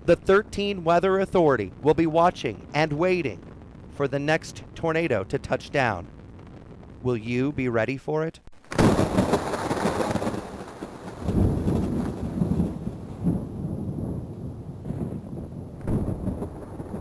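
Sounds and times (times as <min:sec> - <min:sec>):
thunder clap and rumbles: 0:00.0 - 0:07.5, 0:08.6 - 0:17.0.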